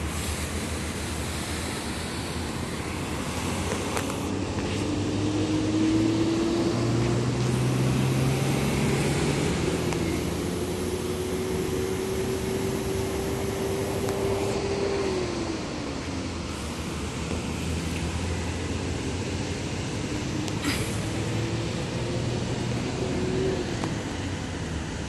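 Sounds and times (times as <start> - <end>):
diesel locomotive engines throttling: 0.0 - 25.0.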